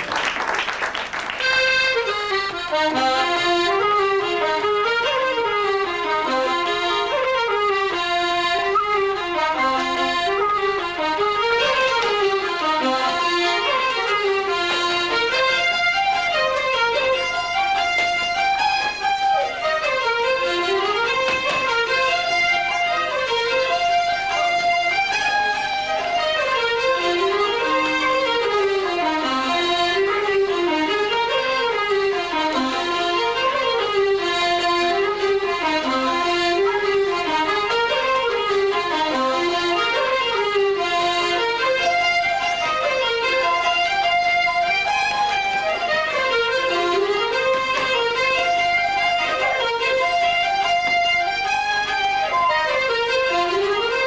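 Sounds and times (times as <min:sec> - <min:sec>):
button accordion: 0:01.1 - 0:54.0
fiddle: 0:01.3 - 0:54.0
flute: 0:06.4 - 0:10.5.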